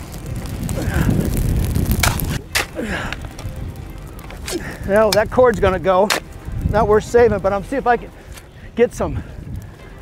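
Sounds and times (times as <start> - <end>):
wind buffeting microphone: 0.0 - 10.0
shovels beating grass: 1.9 - 3.2, 4.3 - 6.4.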